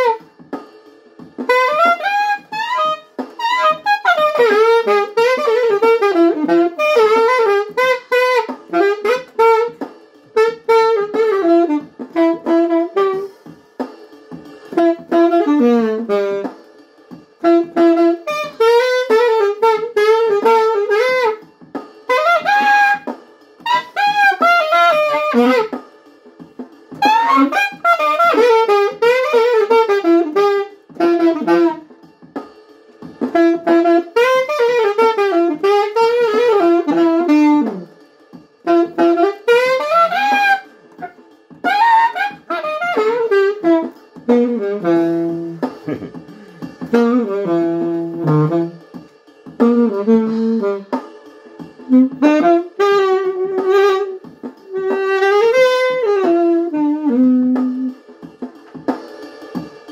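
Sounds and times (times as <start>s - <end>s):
solo saxophone melody: 0.0s - 0.3s, 1.4s - 13.3s, 14.7s - 16.5s, 17.4s - 21.4s, 22.1s - 25.8s, 27.0s - 31.9s, 33.3s - 37.9s, 38.6s - 46.0s, 46.9s - 48.8s, 49.6s - 51.0s, 51.9s - 58.0s.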